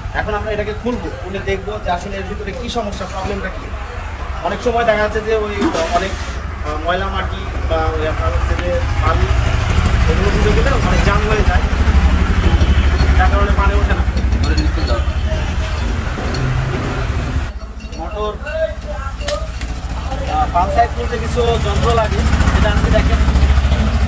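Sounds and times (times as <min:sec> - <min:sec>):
men talking: 0:00.0 - 0:24.0
loud low rumble: 0:07.0 - 0:17.5.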